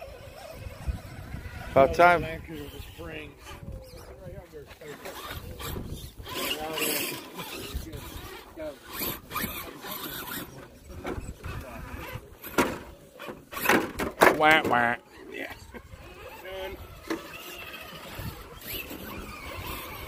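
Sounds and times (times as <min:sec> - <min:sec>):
group chatter: 0:00.0 - 0:13.6
toy cars clicking and whirring: 0:00.0 - 0:20.0.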